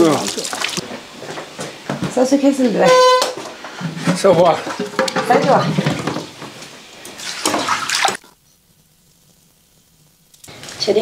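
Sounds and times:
water poured and splashing: 0.0 - 0.9, 5.2 - 8.3
woman's voice: 2.1 - 3.0, 5.2 - 5.8, 10.8 - 11.0.

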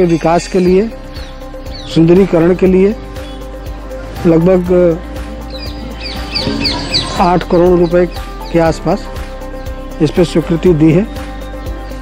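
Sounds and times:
bird chirping: 0.0 - 3.6, 5.2 - 9.8
quiet background music: 0.0 - 12.0.

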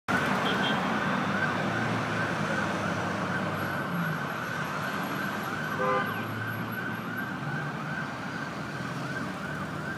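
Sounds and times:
vehicle siren warbling: 0.1 - 9.9.

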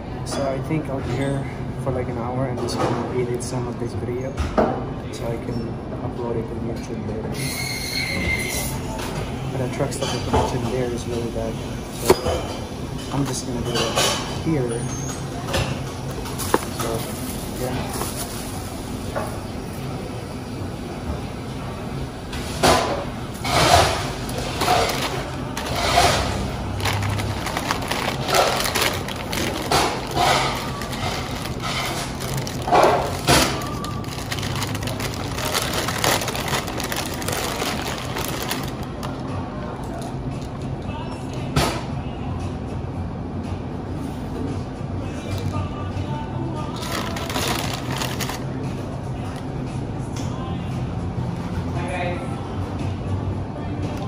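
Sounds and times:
plastic bag crinkling: 24.5 - 39.2, 46.7 - 48.4.

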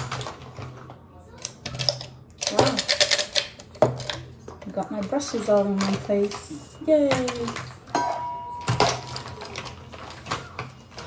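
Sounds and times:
makeup brushes clicking and clattering: 1.4 - 11.0.

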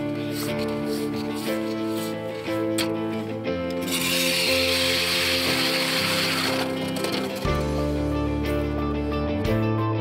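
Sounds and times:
instrumental background music: 0.0 - 10.0
ice auger drilling into ice: 3.6 - 7.8.

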